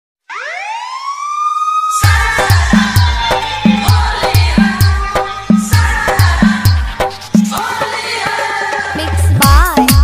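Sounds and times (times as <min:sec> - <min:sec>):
siren sound effect sweeping up: 0:00.2 - 0:06.7.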